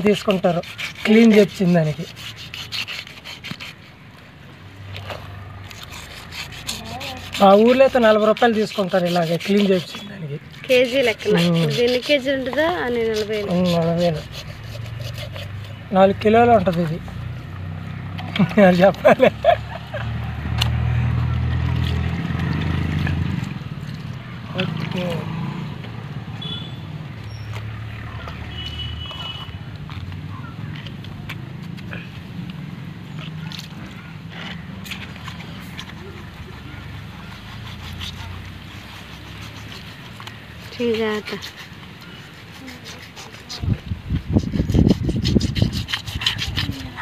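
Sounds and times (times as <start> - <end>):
knife scraping fish scales: 0.0 - 4.1, 4.9 - 17.0, 33.2 - 47.0.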